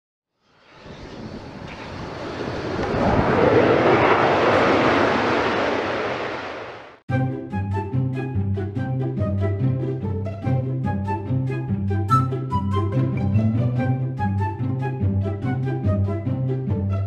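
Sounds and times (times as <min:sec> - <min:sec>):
jet airplane passing: 0:00.4 - 0:07.0
music: 0:07.1 - 0:17.0.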